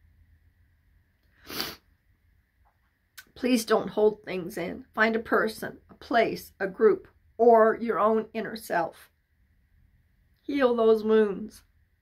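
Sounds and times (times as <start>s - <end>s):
woman sniffling: 1.4s - 1.8s.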